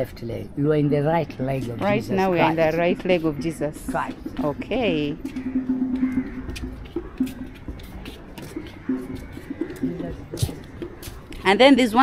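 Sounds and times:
dove cooing: 1.9 - 11.5
footsteps: 2.5 - 12.0.

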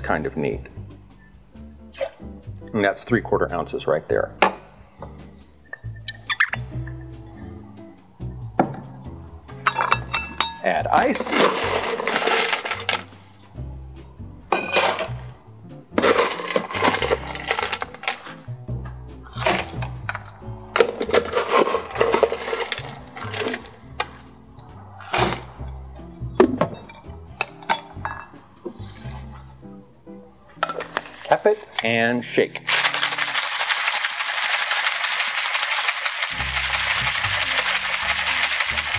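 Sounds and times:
background music: 0.0 - 38.9
ice cubes clattering into metal tin: 9.7 - 13.2, 14.5 - 15.2, 16.0 - 18.5, 19.4 - 24.2, 32.6 - 38.9.

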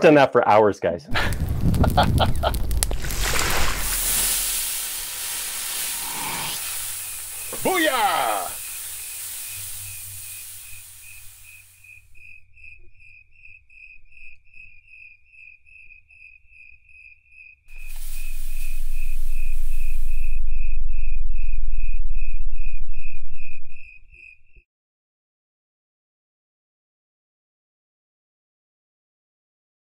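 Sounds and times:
deep rumble: 1.1 - 5.0, 17.8 - 23.9
hiss: 1.1 - 12.1, 17.7 - 20.4
crickets chirping: 1.2 - 24.6.

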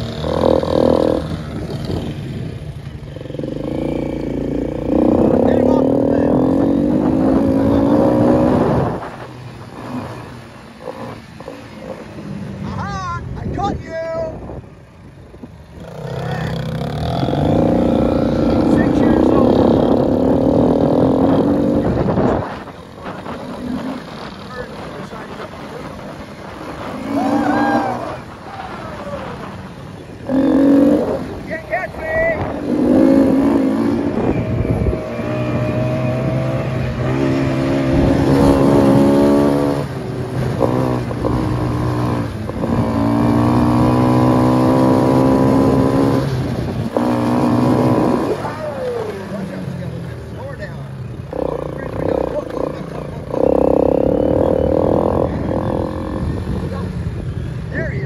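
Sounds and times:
atv engine running: 0.0 - 13.6, 14.3 - 58.0.

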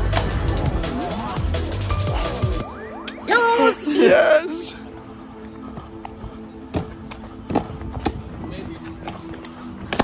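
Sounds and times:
music with sustained notes: 0.0 - 10.0
feet running and landing on paving: 5.7 - 10.0.

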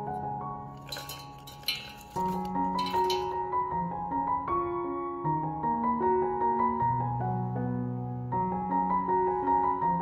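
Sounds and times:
soft piano music: 0.0 - 10.0
berries pattering into metal pot: 0.7 - 3.5.

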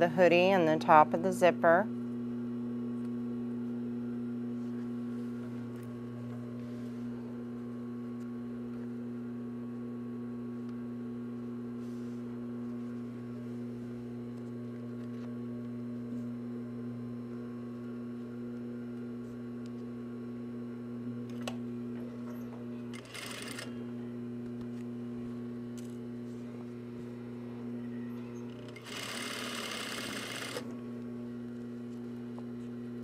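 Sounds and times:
sewing machine running: 22.9 - 23.8, 28.5 - 30.7.

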